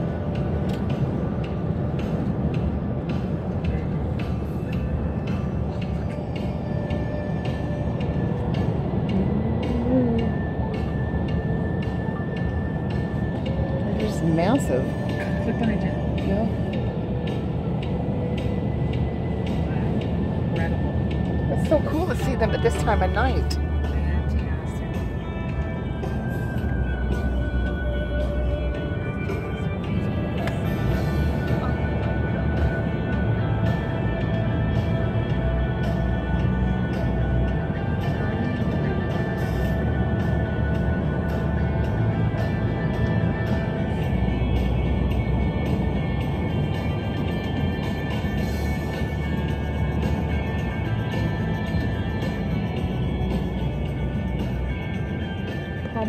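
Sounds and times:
music on car radio: 0:00.0 - 0:56.0
road noise inside car: 0:00.0 - 0:56.0.

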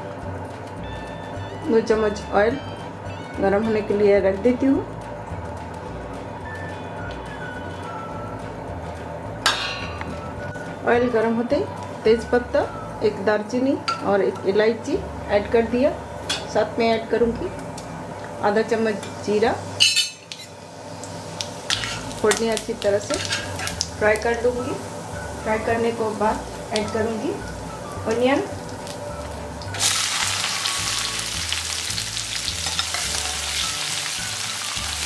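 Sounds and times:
soft background music: 0:00.0 - 0:35.0
seeds sizzling in oil: 0:18.9 - 0:35.0.

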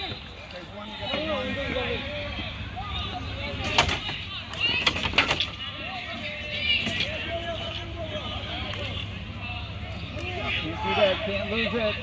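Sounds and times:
distant shouting voices: 0:00.0 - 0:12.0.

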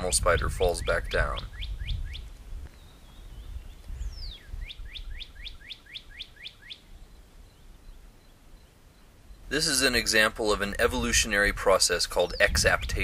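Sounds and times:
low wind rumble: 0:00.0 - 0:13.0
songbird singing: 0:00.0 - 0:13.0.

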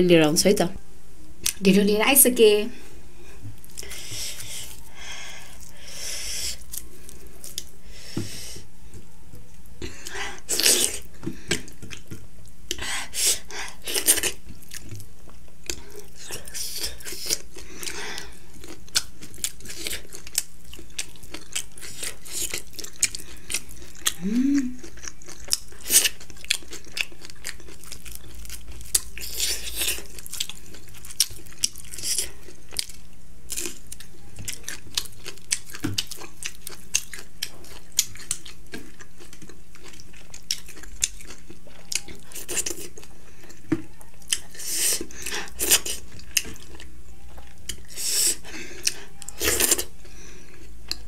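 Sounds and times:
steady background hum: 0:00.0 - 0:51.0
person chewing and crunching: 0:03.6 - 0:07.7, 0:09.8 - 0:51.0.

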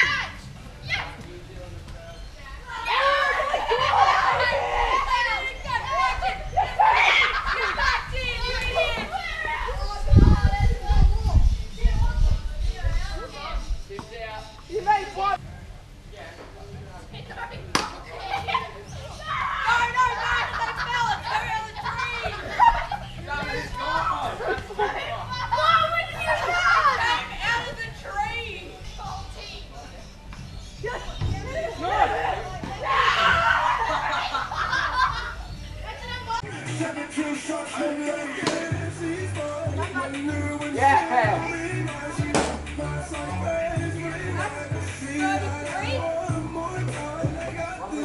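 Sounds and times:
boys calling and shouting: 0:00.0 - 0:48.0.

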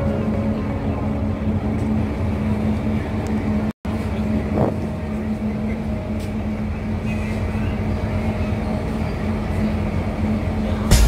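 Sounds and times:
ship engines droning: 0:00.0 - 0:11.0.

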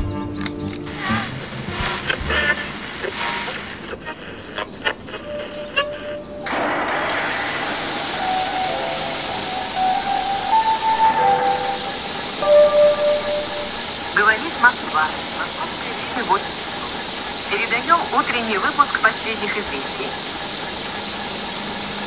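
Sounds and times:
faint tune of stepping notes: 0:00.0 - 0:02.8, 0:09.7 - 0:14.6
radio hiss: 0:00.9 - 0:22.0.

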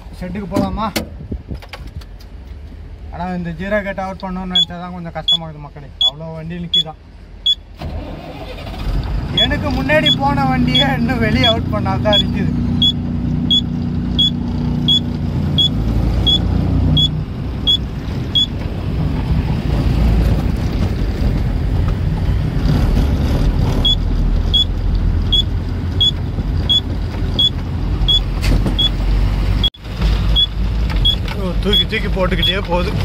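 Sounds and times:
diesel engine rumble: 0:00.0 - 0:33.0
indicator relay ticking: 0:04.5 - 0:05.4, 0:06.0 - 0:07.6, 0:10.0 - 0:16.4, 0:18.4 - 0:18.6, 0:23.8 - 0:29.0.

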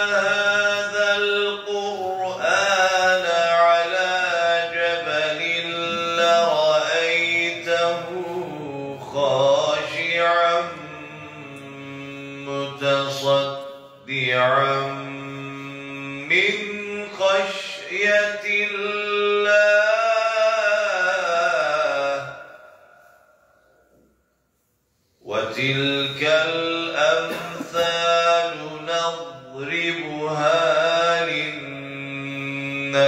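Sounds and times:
man chanting melodically: 0:00.0 - 0:22.8, 0:25.2 - 0:33.0.

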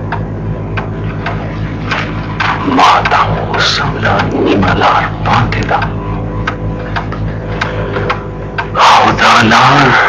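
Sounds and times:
steady low hum: 0:00.0 - 0:10.0
sharp ticks: 0:00.1 - 0:08.8.

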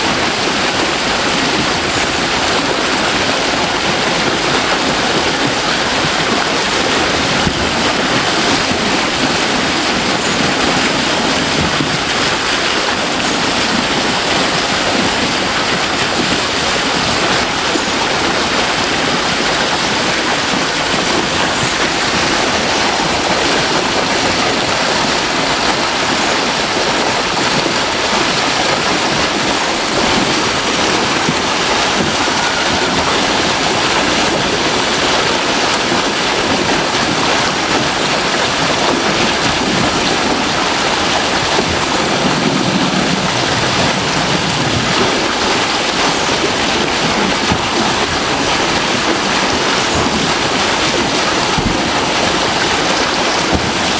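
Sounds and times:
water pouring over weir: 0:00.0 - 0:53.9.

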